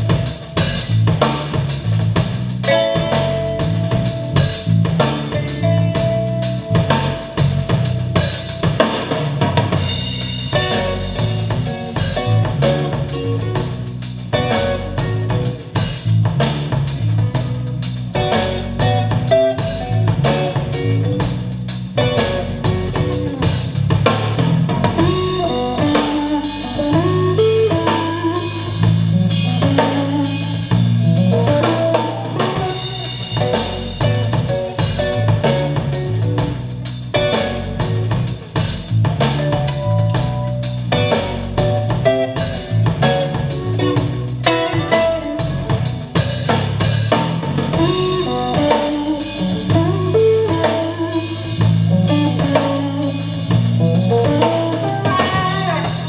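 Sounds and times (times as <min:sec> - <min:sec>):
jazz with drums guitar and bass: 0:00.0 - 0:56.0.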